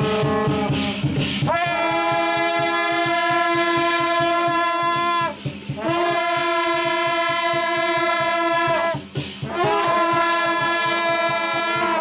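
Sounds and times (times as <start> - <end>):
brass horns blowing long notes: 0.0 - 12.0.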